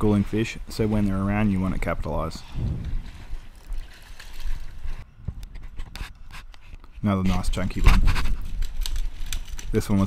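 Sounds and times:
wind rumble on microphone: 1.6s - 6.4s.

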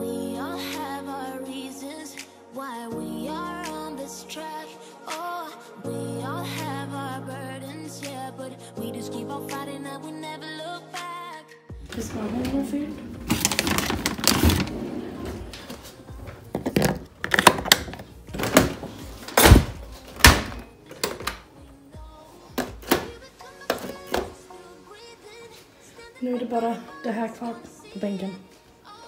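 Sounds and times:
background song: 0.0s - 29.0s.

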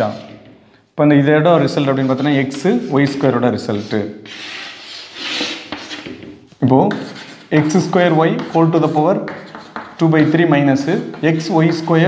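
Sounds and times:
chalk scratching on blackboard: 0.0s - 0.5s, 1.7s - 12.0s.

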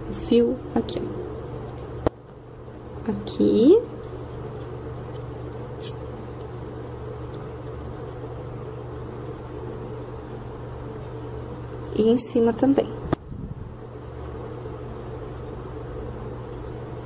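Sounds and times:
low electric hum: 0.0s - 17.0s.

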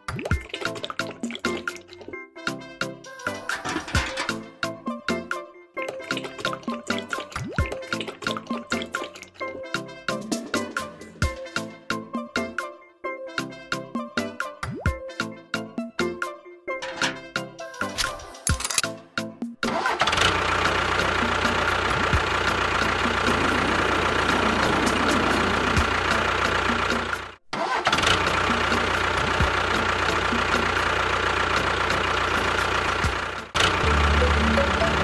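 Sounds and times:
music: 0.0s - 35.0s.

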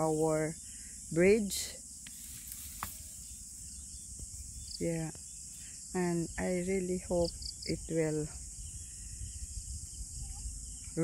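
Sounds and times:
insects chorus: 0.0s - 11.0s.

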